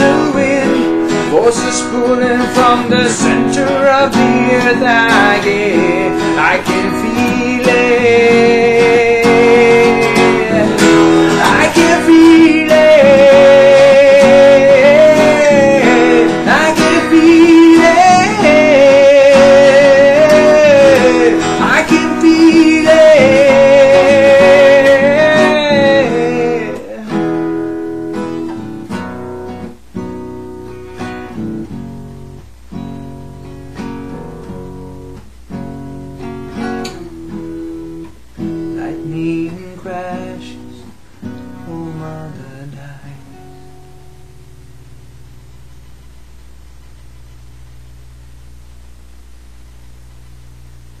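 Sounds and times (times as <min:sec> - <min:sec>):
acoustic guitar strumming chords: 0:00.0 - 0:48.6
faint low hum: 0:00.0 - 0:51.0.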